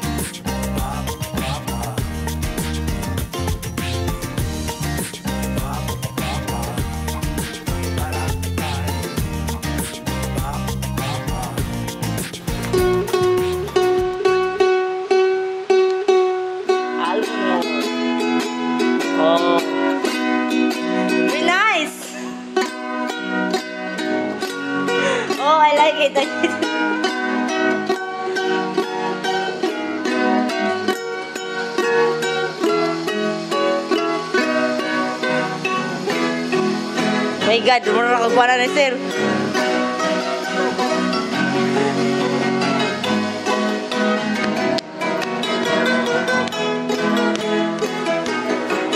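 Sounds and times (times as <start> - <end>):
person singing: 0.0 - 22.9, 23.6 - 48.9
ukulele playing: 0.0 - 48.9.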